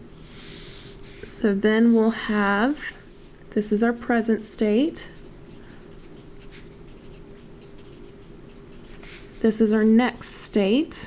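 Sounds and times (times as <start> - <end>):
marker scratching on paper: 5.1 - 9.4.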